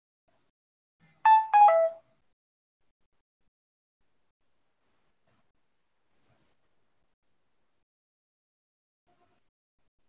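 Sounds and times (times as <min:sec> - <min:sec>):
descending electronic notification chime: 0:01.3 - 0:02.0.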